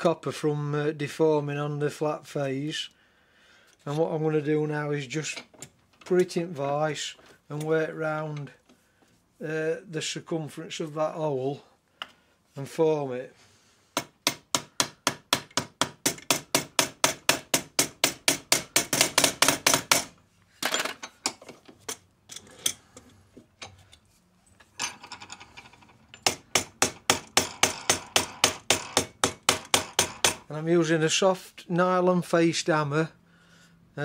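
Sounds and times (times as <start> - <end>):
hammer striking copper: 14.0 - 20.2, 26.2 - 30.5.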